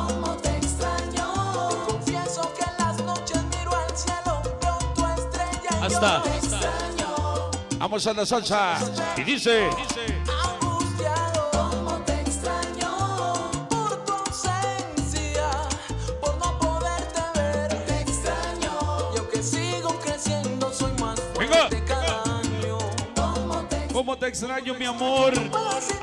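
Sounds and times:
salsa music over sound system: 0.0 - 26.0.

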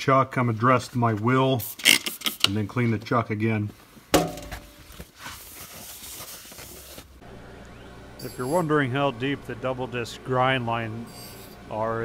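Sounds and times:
sharp knock with ring: 4.2 - 4.8
low steady hum: 7.2 - 12.0.

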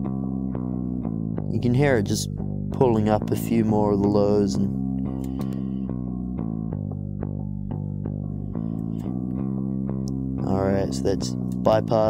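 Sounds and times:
plucked bass guitar line: 0.0 - 12.0.

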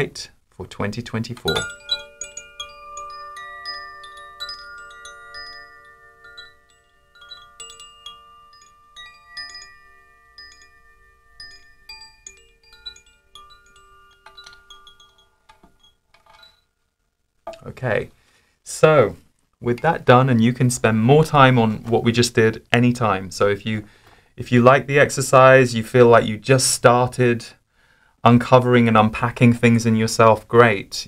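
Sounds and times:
wind chimes ringing: 1.4 - 16.8.

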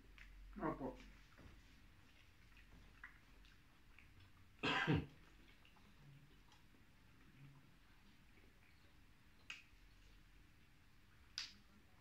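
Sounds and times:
man coughing: 4.6 - 5.1.

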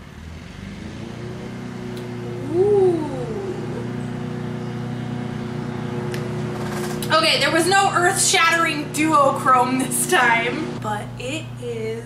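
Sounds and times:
lawn mower engine running: 0.0 - 12.0.

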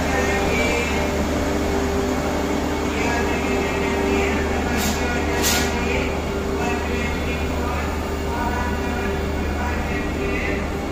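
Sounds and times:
electric train humming: 0.0 - 10.9.

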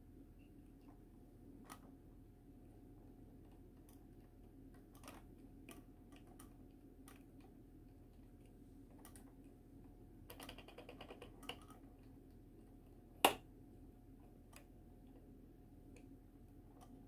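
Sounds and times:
faint steady hum: 0.0 - 17.0
small plastic clicks: 3.4 - 9.5, 10.3 - 12.4.

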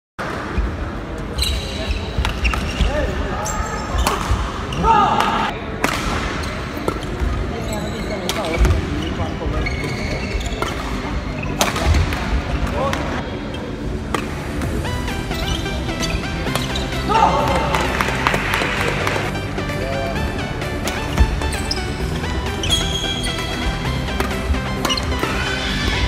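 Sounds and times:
shoes squeaking on court: 1.3 - 4.9, 6.4 - 11.9, 15.3 - 17.1, 20.8 - 26.0
racket hitting shuttlecock: 4.0 - 7.3, 11.6 - 13.1, 14.1 - 14.5, 16.4 - 19.2, 23.6 - 25.5.

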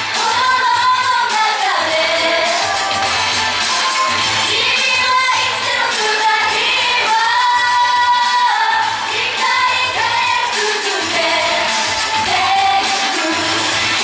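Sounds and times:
women singing: 0.0 - 3.2, 4.4 - 14.0
upbeat pop music with bass: 0.0 - 14.0.

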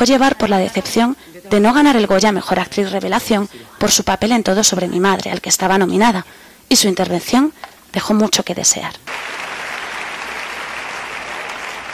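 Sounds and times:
audience applauding: 9.1 - 11.9.

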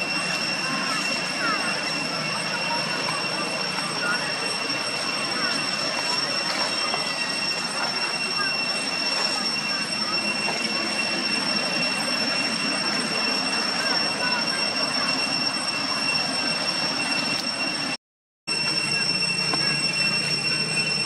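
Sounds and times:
high-pitched insect drone: 0.0 - 21.0.

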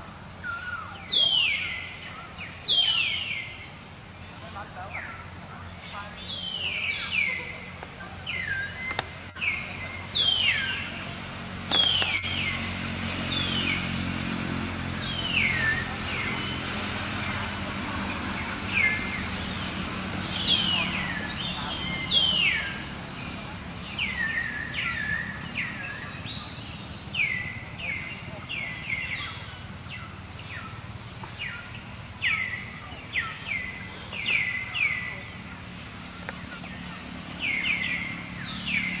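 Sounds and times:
low engine hum: 0.0 - 39.0
bird whistled chirps: 0.4 - 3.6
bird whistling downward calls: 11.7 - 12.7.

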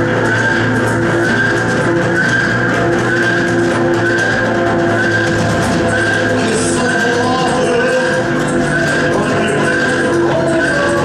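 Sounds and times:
high gliding whine: 0.0 - 11.0
psychedelic electronic music: 0.0 - 11.0.

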